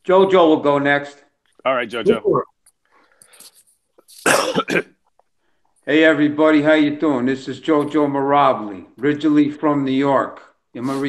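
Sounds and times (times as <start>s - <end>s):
man talking: 0.0s - 2.4s, 5.9s - 11.0s
man clearing his throat: 4.2s - 4.9s.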